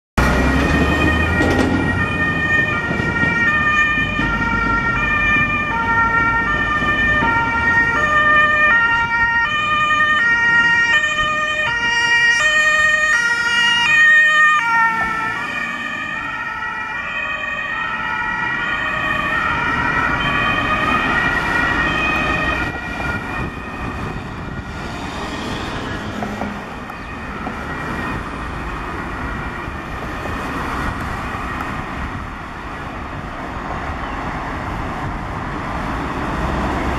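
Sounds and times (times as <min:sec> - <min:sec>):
two-tone ambulance siren: 0:00.2 - 0:33.4
road traffic noise: 0:00.2 - 0:36.9.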